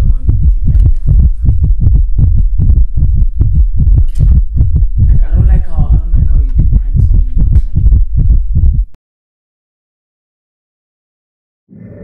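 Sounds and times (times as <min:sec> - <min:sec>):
deep bass heartbeat pulse: 0:00.0 - 0:09.0.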